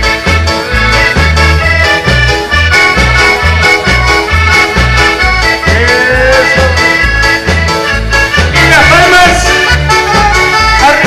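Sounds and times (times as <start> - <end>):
accordion-led dance band: 0.0 - 11.0
pulsing bass line: 0.0 - 11.0.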